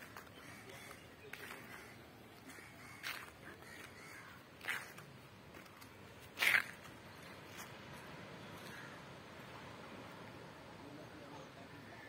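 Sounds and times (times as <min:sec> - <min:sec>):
bird calls: 0:00.0 - 0:05.0
faint outdoor background noise: 0:00.0 - 0:12.0.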